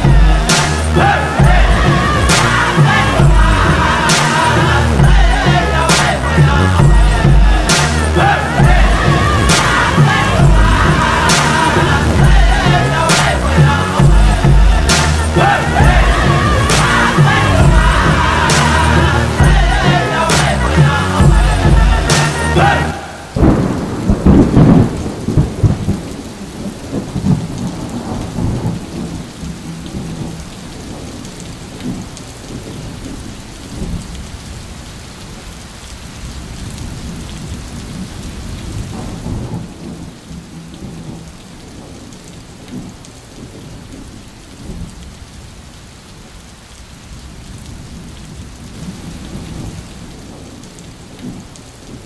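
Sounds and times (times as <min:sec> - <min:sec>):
thunder rumbling: 0:00.0 - 0:34.8, 0:36.0 - 0:45.3
steady rain: 0:00.0 - 0:52.0.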